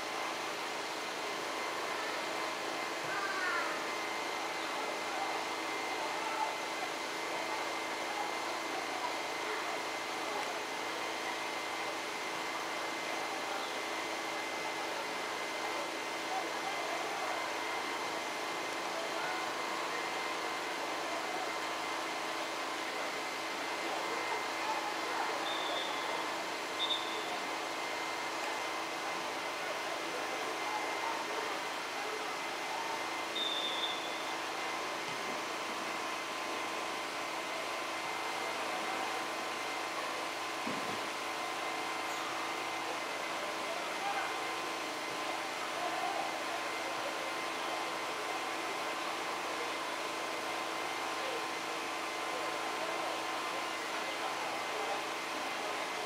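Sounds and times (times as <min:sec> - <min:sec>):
murmur of voices: 0:00.0 - 0:56.0
steady background noise: 0:00.0 - 0:56.0.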